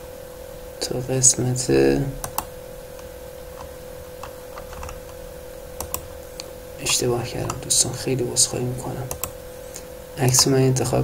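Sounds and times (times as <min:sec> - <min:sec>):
faint steady hum: 0:00.0 - 0:11.0
computer mouse clicks: 0:02.2 - 0:05.2, 0:05.8 - 0:07.6, 0:09.0 - 0:09.4.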